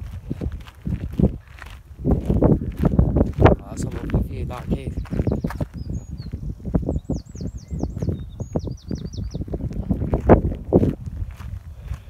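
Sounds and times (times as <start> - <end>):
footsteps on gravel: 0.0 - 6.9, 9.3 - 12.0
songbird singing: 3.4 - 10.1.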